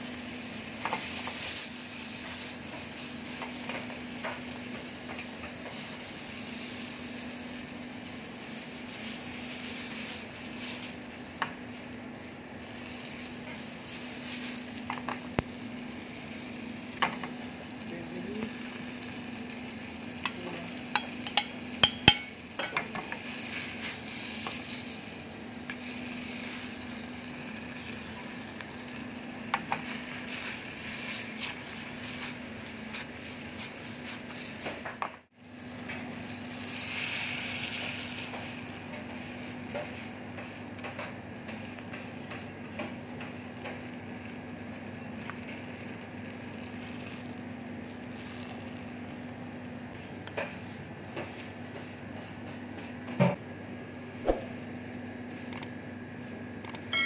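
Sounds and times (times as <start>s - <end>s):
food sizzling in a pan: 0.0s - 51.6s.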